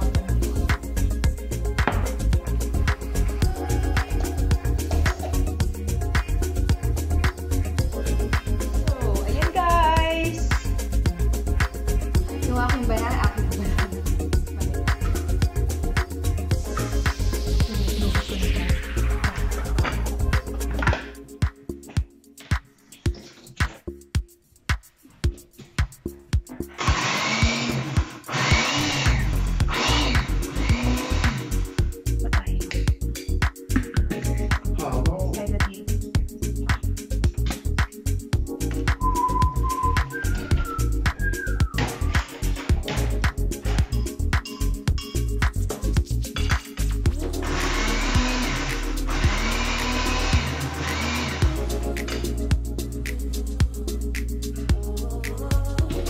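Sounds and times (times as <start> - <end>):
background music with beat: 0.0 - 56.0
blender running: 26.8 - 31.7, 47.3 - 51.6.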